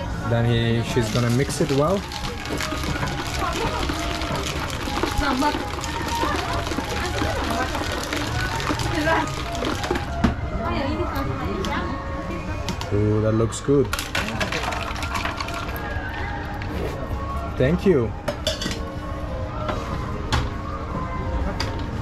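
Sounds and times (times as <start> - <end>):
ice rattling in shaker cup: 0.8 - 10.2, 13.9 - 16.0.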